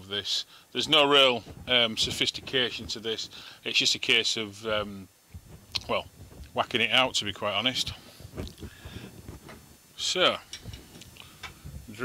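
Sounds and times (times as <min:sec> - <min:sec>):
faint handling noise: 0:00.9 - 0:12.0.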